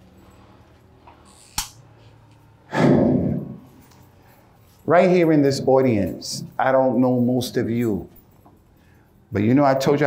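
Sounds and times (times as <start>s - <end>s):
sharp click: 1.5s - 1.8s.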